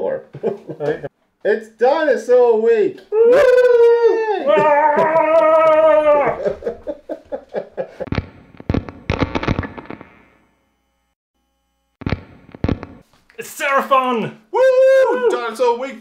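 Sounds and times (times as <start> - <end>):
man shouting woo: 3.1 - 6.5, 14.5 - 15.7
sharp cracks and knocks: 8.1 - 10.1, 12.0 - 13.0.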